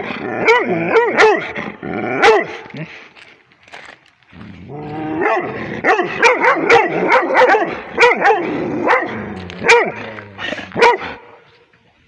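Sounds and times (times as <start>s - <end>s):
dog barking: 0.4s - 1.6s, 2.2s - 2.6s, 5.2s - 10.1s, 10.8s - 11.4s.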